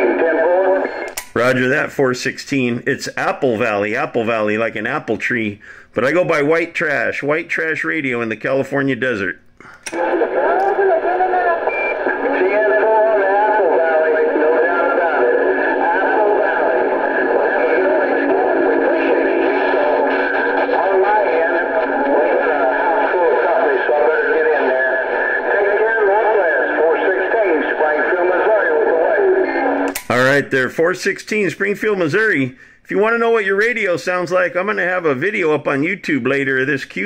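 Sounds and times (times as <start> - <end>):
radio speech through speaker: 0.0 - 9.3, 9.9 - 37.0.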